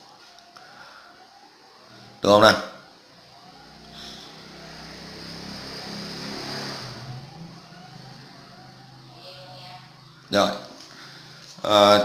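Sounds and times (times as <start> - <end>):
motor vehicle passing: 2.8 - 11.6.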